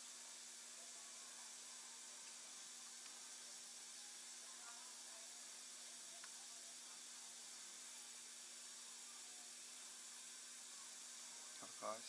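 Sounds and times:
faint hiss: 0:00.0 - 0:12.0.

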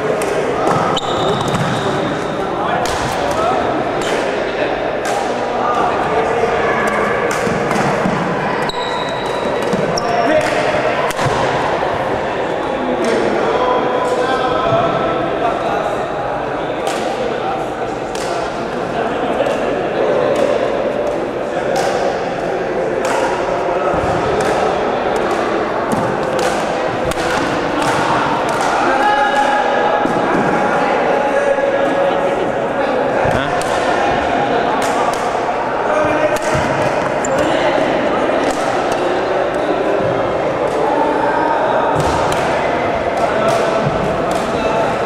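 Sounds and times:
babble of many voices: 0:00.0 - 0:45.0
rackets striking shuttlecocks: 0:24.2 - 0:29.0, 0:38.4 - 0:39.6, 0:41.9 - 0:44.6.

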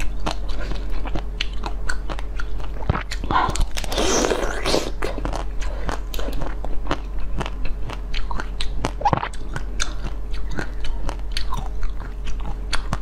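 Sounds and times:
chewing and crunching ice: 0:00.0 - 0:13.0.

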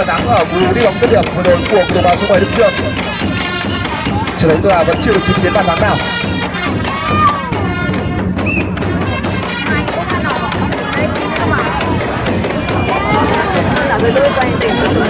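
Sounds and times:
background music: 0:00.0 - 0:15.0
crowd calling and shouting: 0:00.0 - 0:15.0.

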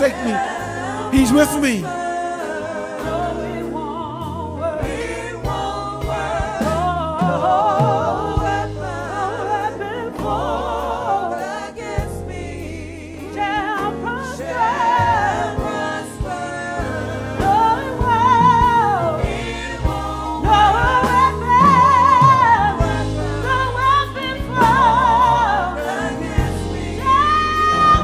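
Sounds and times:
held bass notes: 0:00.0 - 0:02.3
gospel singers with vibrato: 0:00.0 - 0:28.0.

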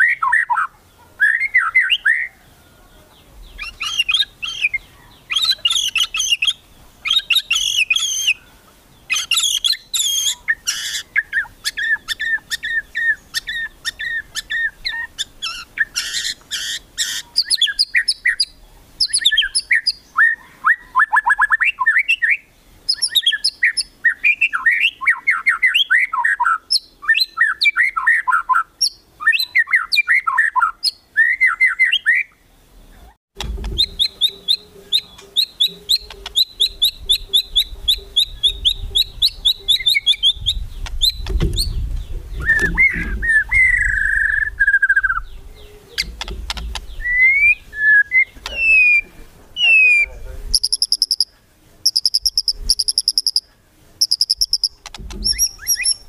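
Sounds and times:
bird whistled downward-sweeping notes: 0:33.8 - 0:46.2, 0:46.9 - 0:51.3, 0:51.9 - 0:56.0.

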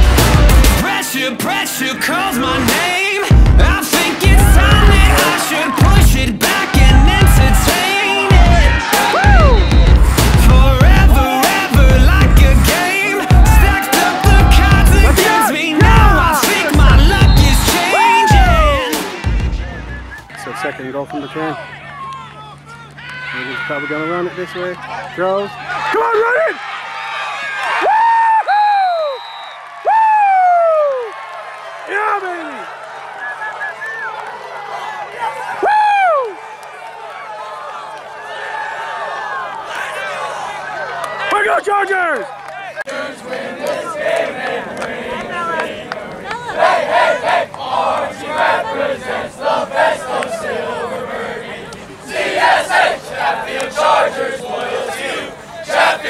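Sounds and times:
crowd cheering and applauding: 0:00.0 - 0:49.4
boys shouting a chant: 0:04.1 - 0:09.6, 0:10.8 - 0:19.1, 0:43.0 - 0:56.0
person whooping: 0:06.8 - 0:09.7, 0:17.1 - 0:19.0, 0:27.8 - 0:29.2, 0:29.8 - 0:31.1, 0:35.6 - 0:36.4
leader shouting: 0:12.8 - 0:19.2.

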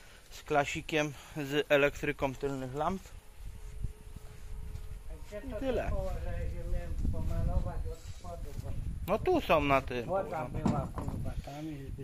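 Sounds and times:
wind rumble on microphone: 0:02.9 - 0:12.0.

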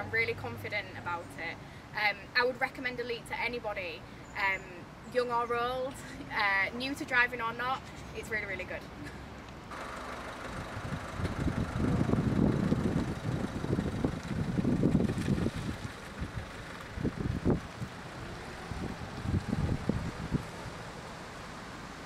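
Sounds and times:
car engine driving off: 0:09.7 - 0:22.0
wind buffeting microphone: 0:10.4 - 0:21.1.

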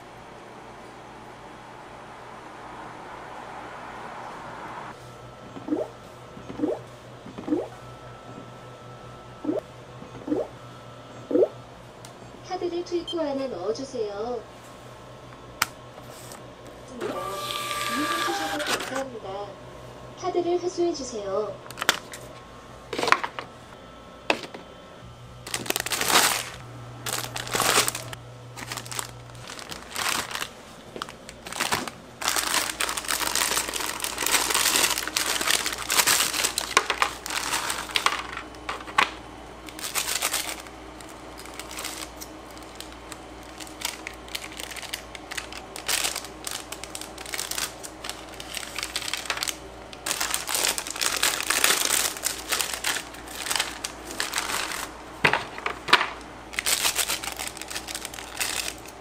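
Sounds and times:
steady low hum: 0:00.0 - 0:17.1, 0:17.9 - 0:59.0
packaging crinkling: 0:25.4 - 0:59.0.

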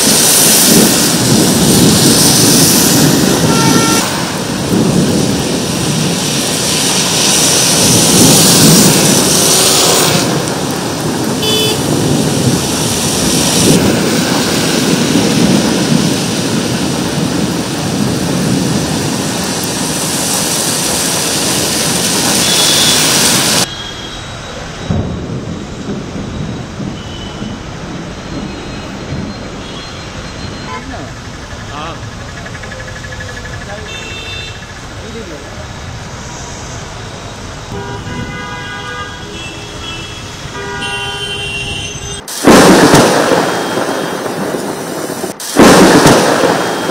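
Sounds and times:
cars driving on wet road: 0:00.0 - 0:46.9
heavy rain pouring on road: 0:00.0 - 0:46.9.

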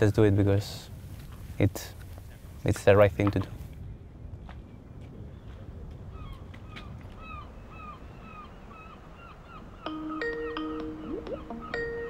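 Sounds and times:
bird calling: 0:05.3 - 0:12.0
soft mallet percussion music: 0:09.9 - 0:12.0.

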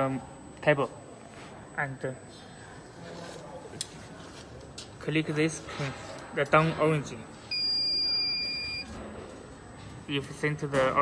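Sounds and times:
high-pitched electronic beep: 0:07.5 - 0:08.9.

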